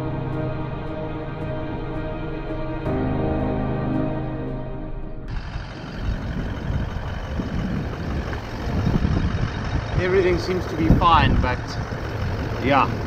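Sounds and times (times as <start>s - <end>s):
background music: 0.0s - 5.4s
vehicle engine running: 4.8s - 13.0s
wind noise on microphone: 5.3s - 13.0s.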